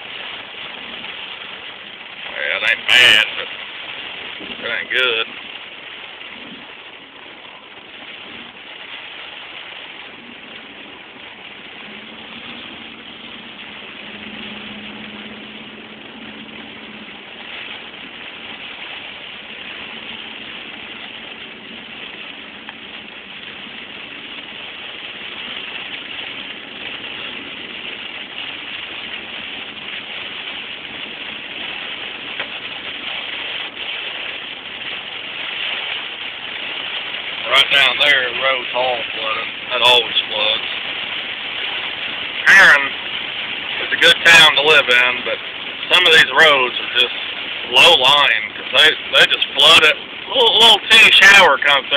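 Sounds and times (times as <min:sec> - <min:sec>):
low engine hum: 0:00.0 - 0:51.9
rain on car roof: 0:00.0 - 0:51.9
water spraying off tyres: 0:00.0 - 0:51.9.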